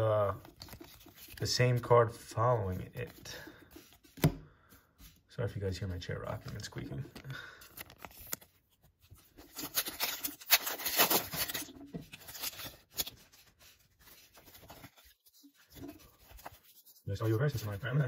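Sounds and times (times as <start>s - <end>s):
foil wrapper crinkling and tearing: 9.4s - 13.6s.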